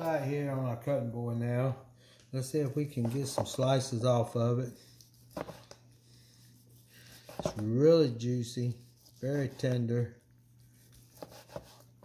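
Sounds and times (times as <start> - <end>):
knife cutting through meat: 10.8 - 12.0.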